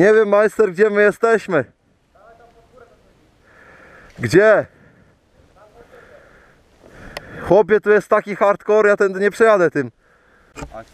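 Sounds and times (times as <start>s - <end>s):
faint steady hiss: 0.0s - 10.9s.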